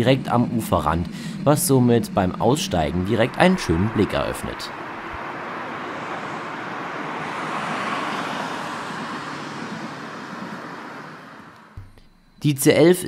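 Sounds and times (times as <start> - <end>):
vehicle passing by: 1.4 - 11.8.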